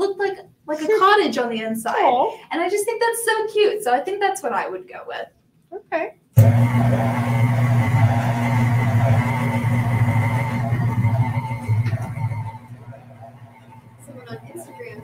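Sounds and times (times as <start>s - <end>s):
stand mixer motor humming: 6.4s - 15.0s.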